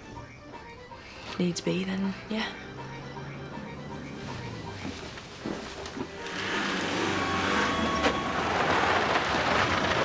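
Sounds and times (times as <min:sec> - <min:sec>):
road noise: 0:00.9 - 0:10.0
car engine: 0:02.5 - 0:10.0.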